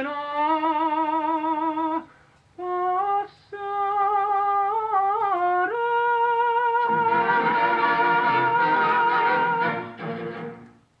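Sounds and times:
orchestra playing final chords: 0:06.9 - 0:10.7.

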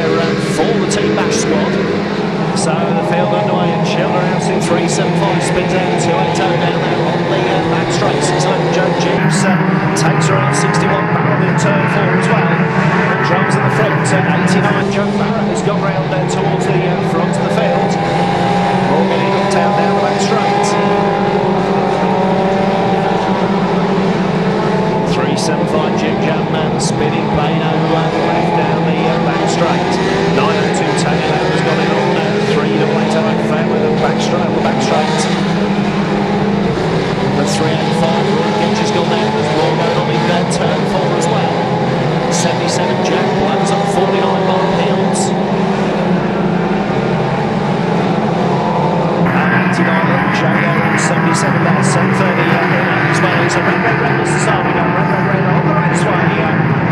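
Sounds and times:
racing car engines revving: 0:00.0 - 0:56.9.

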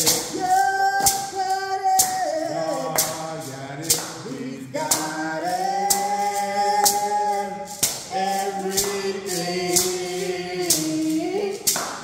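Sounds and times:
gourd shaker rattle: 0:00.0 - 0:12.0
group singing: 0:00.0 - 0:12.0.

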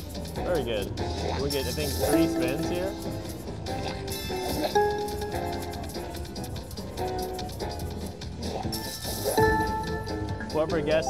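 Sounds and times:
slot machine music: 0:01.4 - 0:07.8.

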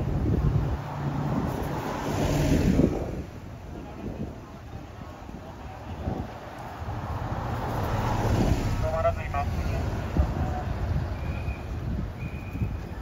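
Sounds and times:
bus driving past: 0:06.4 - 0:13.0.

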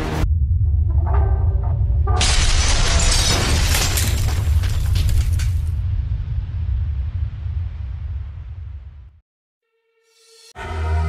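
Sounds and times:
deep low rumble: 0:00.1 - 0:09.2.

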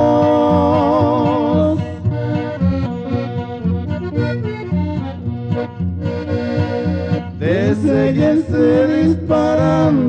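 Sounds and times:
person singing: 0:00.0 - 0:02.0, 0:07.4 - 0:10.0
accordion fills: 0:00.0 - 0:10.0.

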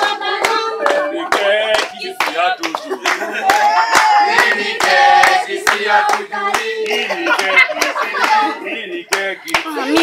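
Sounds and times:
group singing: 0:00.0 - 0:10.0
hands clapping: 0:00.3 - 0:08.4, 0:09.1 - 0:10.0.

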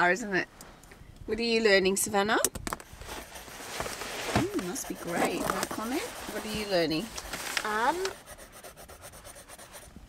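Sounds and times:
paper pages rustling: 0:02.8 - 0:09.0.

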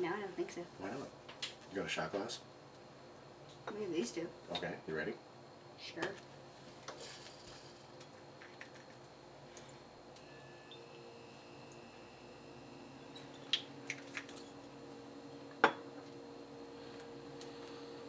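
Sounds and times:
faint steady hum: 0:00.0 - 0:18.0
glass taps and clinks: 0:15.6 - 0:15.8.

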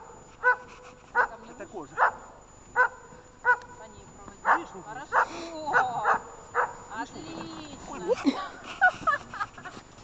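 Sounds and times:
dog barking: 0:00.0 - 0:03.8, 0:04.4 - 0:06.8
people's voices: 0:03.5 - 0:09.6.

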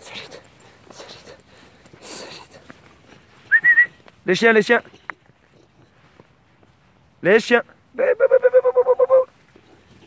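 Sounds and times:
person calling in rapid high pulses: 0:08.0 - 0:09.3.

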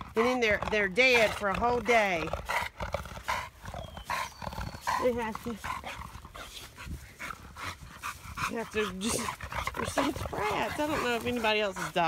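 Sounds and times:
dog panting quickly: 0:00.0 - 0:12.0.

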